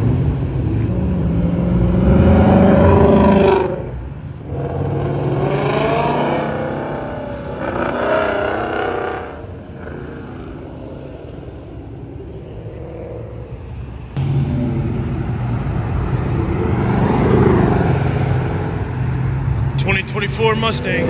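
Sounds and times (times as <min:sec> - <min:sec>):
car engines driving past: 0:00.0 - 0:21.0.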